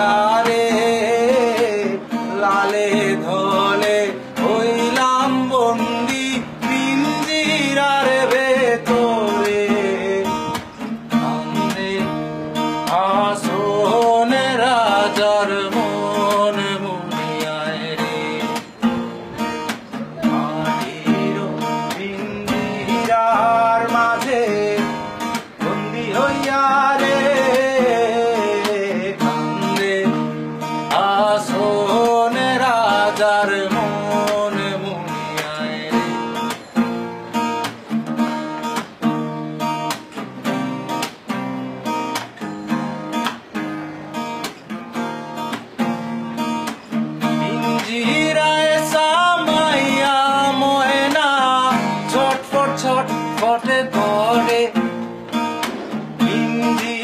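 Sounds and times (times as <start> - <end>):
man singing: 0.0 - 36.9, 46.9 - 57.0
acoustic guitar strumming: 0.0 - 57.0.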